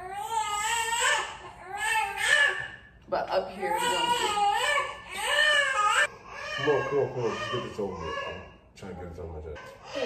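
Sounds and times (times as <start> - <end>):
baby crying: 0.0 - 2.8, 3.5 - 8.6, 9.6 - 10.0.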